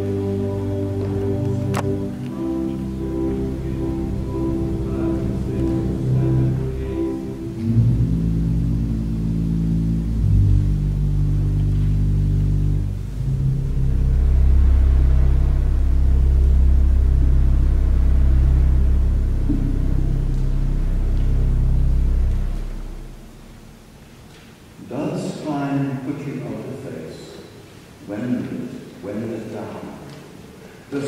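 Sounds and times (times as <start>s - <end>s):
deep organ pedal bass note: 0.0s - 24.3s
pipe organ low chords: 0.0s - 27.1s.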